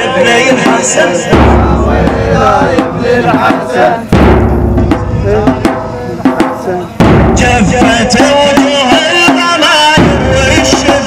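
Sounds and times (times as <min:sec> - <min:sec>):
chanted vocal melody: 0:00.0 - 0:11.0
sharp percussive hits: 0:00.6 - 0:11.0
bass drum strikes: 0:01.3 - 0:09.0, 0:10.0 - 0:11.0.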